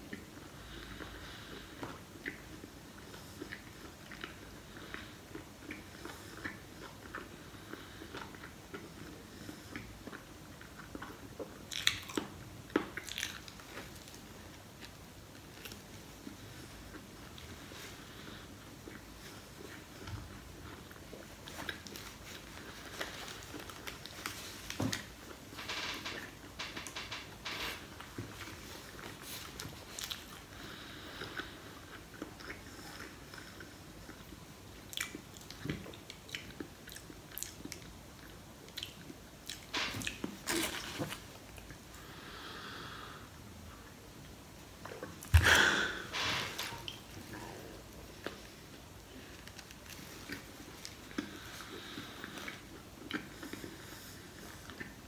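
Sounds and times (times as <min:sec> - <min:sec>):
person chewing bread: 0:00.0 - 0:55.0.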